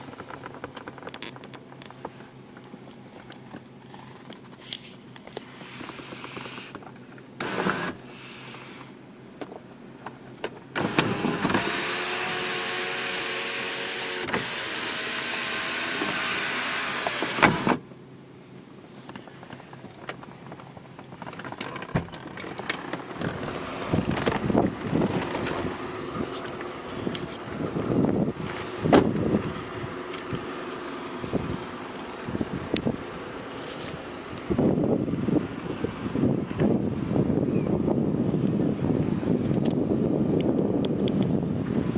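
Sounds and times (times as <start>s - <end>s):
sunroof motor running: 5.2s - 8.7s, 10.7s - 17.8s, 22.3s - 40.4s
wind buffeting microphone: 23.0s - 30.5s, 31.2s - 33.2s, 34.0s - 41.9s.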